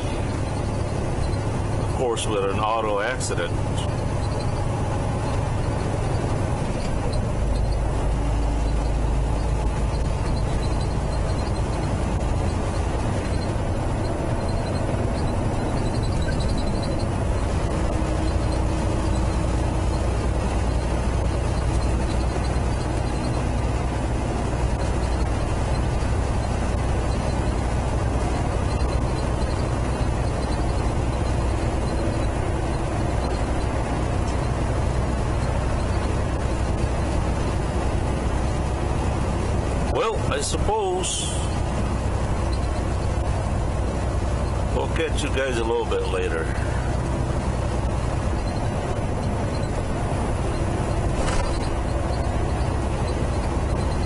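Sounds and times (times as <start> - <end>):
road noise: 0.0 - 54.0
truck engine rumble: 0.0 - 54.0.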